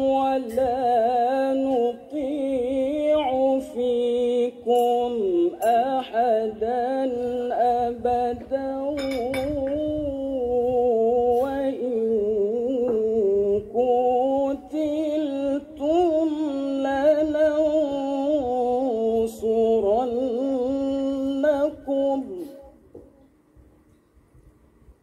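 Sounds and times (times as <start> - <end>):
man reciting melodically: 0.0 - 22.8.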